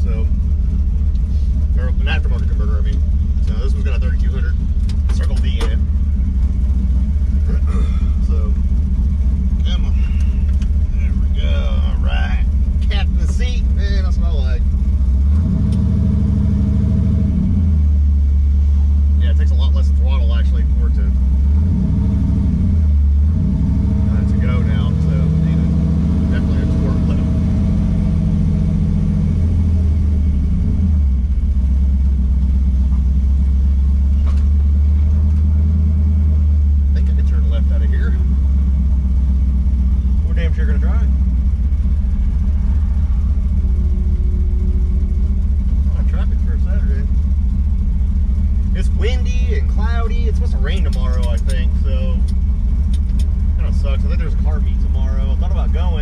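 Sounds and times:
truck engine droning: 0:00.0 - 0:56.0.

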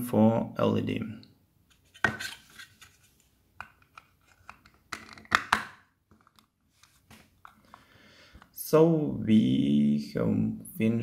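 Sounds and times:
plastic lid clicking: 0:03.6 - 0:06.5.

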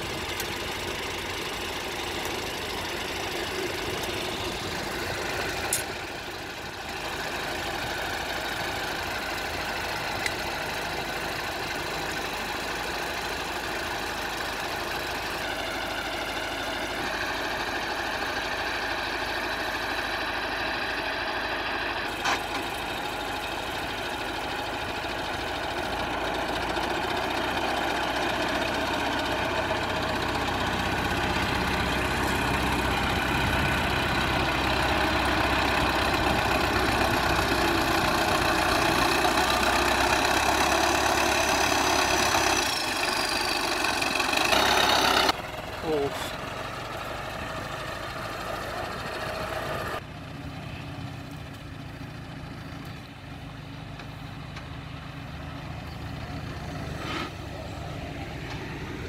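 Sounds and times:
engine running steadily: 0:00.0 - 0:59.0.

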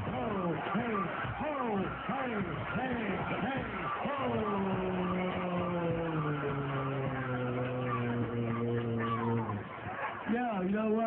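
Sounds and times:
crowd noise: 0:00.0 - 0:11.0
low engine drone: 0:04.5 - 0:10.0.

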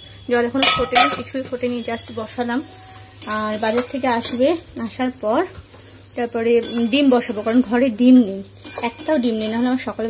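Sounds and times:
woman talking: 0:00.3 - 0:05.6, 0:06.2 - 0:10.0
metal spatula scraping metal pan: 0:08.6 - 0:09.8.

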